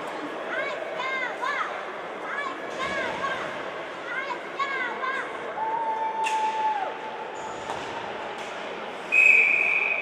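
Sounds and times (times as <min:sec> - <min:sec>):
ice rink background noise: 0:00.0 - 0:10.0
high whistle tone: 0:09.1 - 0:10.0.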